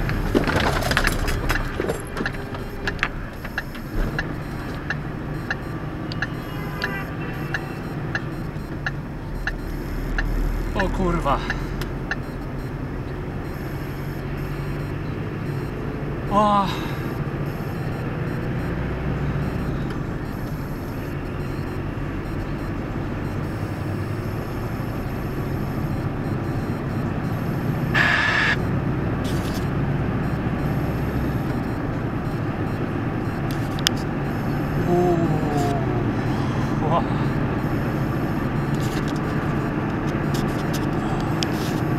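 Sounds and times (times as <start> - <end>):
truck engine and road drone: 0.0 - 41.9
man exclaiming: 16.3 - 17.0, 34.8 - 37.3.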